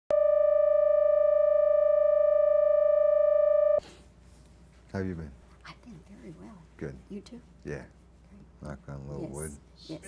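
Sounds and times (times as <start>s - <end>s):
steady electronic reference tone: 0.1s - 3.8s.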